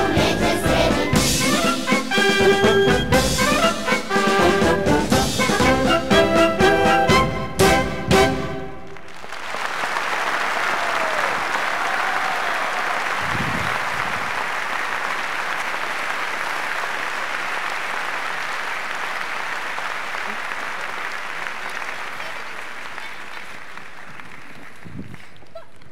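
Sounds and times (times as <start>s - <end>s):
audience applauding: 8.8s - 25.9s.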